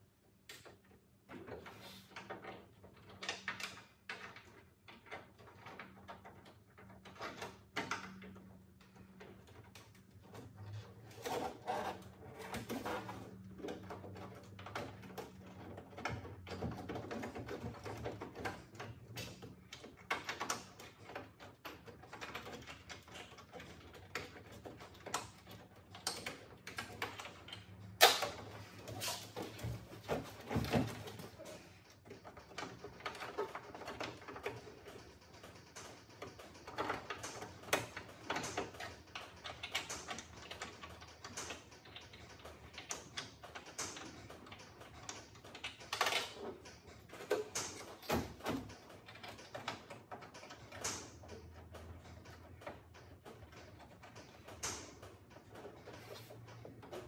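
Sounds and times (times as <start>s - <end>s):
metallic clicks taps and knocks: 0.1s - 11.1s.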